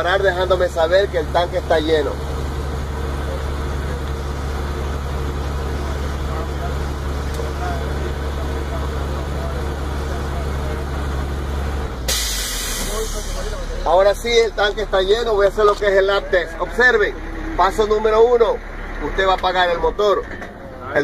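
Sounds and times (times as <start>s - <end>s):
truck engine idling: 0.0s - 21.0s
air compressor running: 2.1s - 15.0s
loud hiss of released air: 12.1s - 13.8s.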